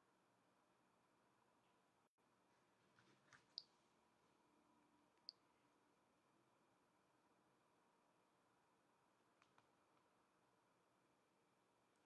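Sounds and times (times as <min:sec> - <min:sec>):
faint sharp clicks: 0:09.3 - 0:10.1.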